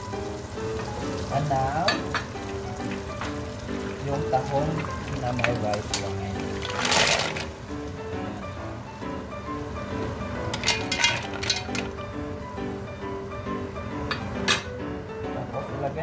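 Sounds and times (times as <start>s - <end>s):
background music: 0.0s - 16.0s
mussel shells clattering in pot: 4.8s - 7.6s, 10.5s - 12.0s.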